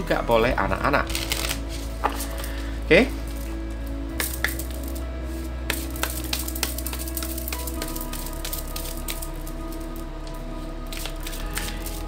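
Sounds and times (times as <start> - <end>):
soft background music: 0.0 - 12.0
cards being shuffled by hand: 1.1 - 2.6, 4.2 - 9.5, 10.9 - 12.0.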